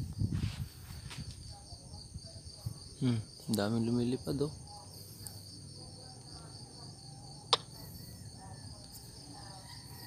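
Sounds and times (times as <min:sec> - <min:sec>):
night insects chirring: 0:00.0 - 0:10.0.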